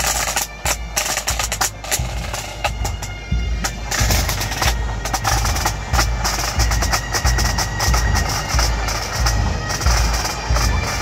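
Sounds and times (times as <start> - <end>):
bagpipes: 0.0 - 11.0
bass drum beating: 0.0 - 11.0
snare drums rattling: 0.0 - 11.0.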